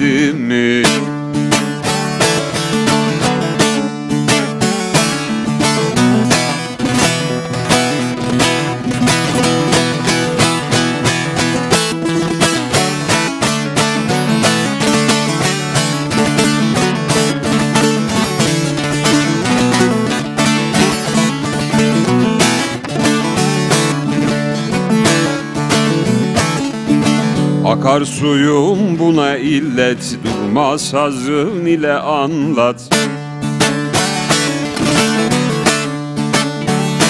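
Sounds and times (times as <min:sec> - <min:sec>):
long-necked lute rapid strumming: 0:00.0 - 0:37.0.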